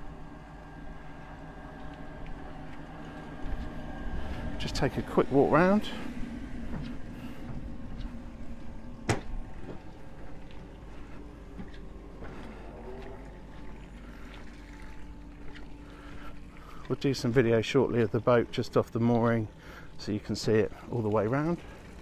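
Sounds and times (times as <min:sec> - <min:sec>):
low rumble: 0:00.0 - 0:16.7.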